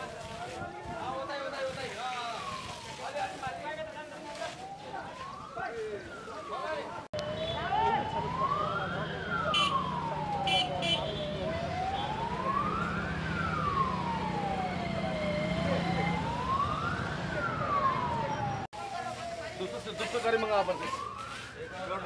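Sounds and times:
siren wailing: 2.1 - 22.0.

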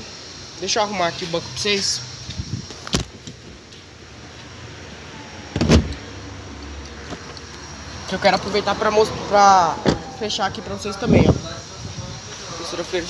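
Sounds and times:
car seat latching clunk: 5.5 - 6.0.

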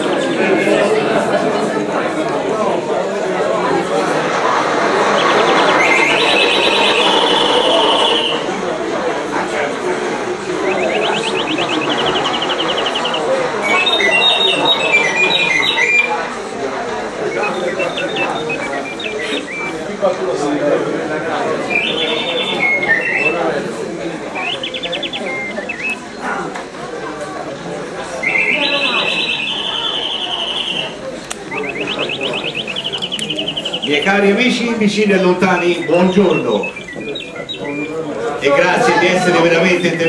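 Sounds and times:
murmur of people talking: 0.0 - 40.0
high chirping and whistle: 4.3 - 8.6, 10.4 - 16.3, 17.2 - 20.0, 21.4 - 26.4, 28.2 - 40.0
pulsing electronic ringing tone: 5.0 - 8.5.

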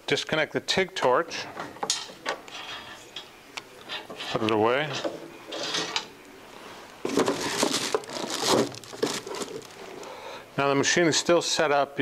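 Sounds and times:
packaging rustling and crinkling: 6.9 - 10.1.

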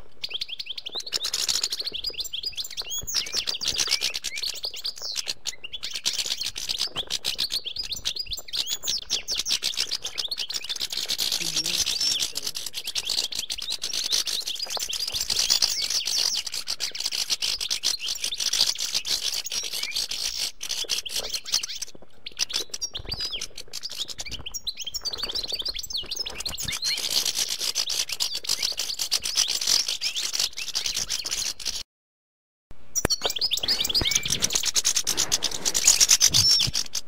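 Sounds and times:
finches twittering and singing: 0.2 - 18.6, 33.0 - 37.0.

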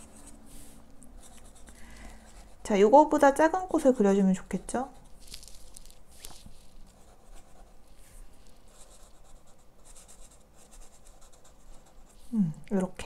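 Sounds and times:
marker scratching on paper: 0.0 - 2.9, 3.7 - 12.3.

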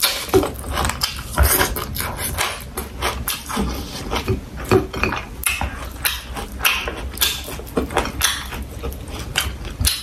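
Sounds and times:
fried food crackling and crunching: 0.0 - 10.0.

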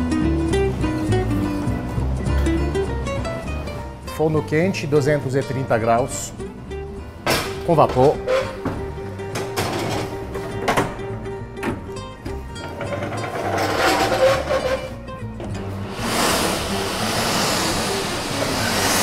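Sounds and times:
background music: 0.0 - 19.0
steam hissing into oven: 15.9 - 19.0.

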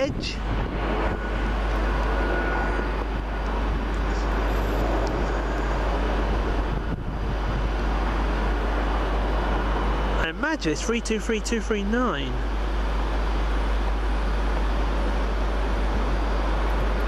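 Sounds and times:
wind rumble on microphone: 0.0 - 10.2
train approaching: 0.0 - 17.0.

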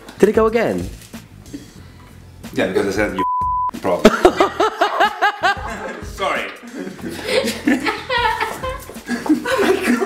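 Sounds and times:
young women laughing: 4.1 - 6.0, 6.7 - 10.0.

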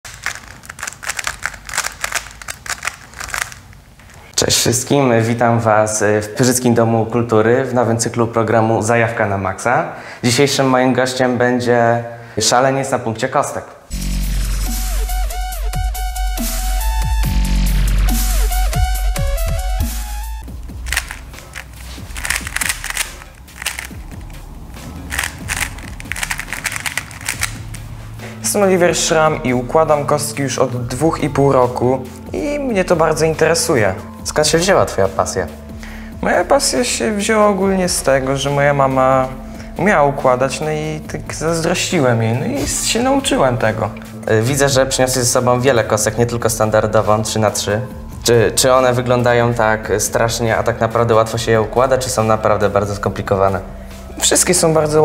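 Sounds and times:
puzzle cube clicking: 0.1 - 4.2, 20.8 - 24.4, 25.0 - 27.9
faint background music: 0.1 - 55.0.

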